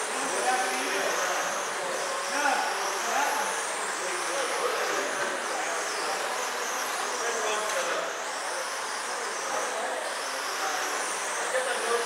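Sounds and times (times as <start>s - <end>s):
electric motors and tyres on dirt: 0.0s - 12.0s
high motor whine: 0.0s - 12.0s.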